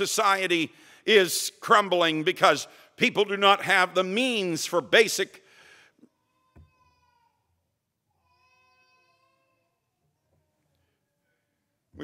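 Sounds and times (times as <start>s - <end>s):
faint high-pitched cry: 6.1s - 11.7s.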